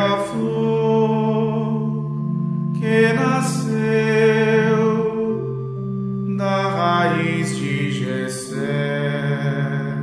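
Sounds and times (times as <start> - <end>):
liturgical chant: 0.0 - 5.6, 6.3 - 10.0.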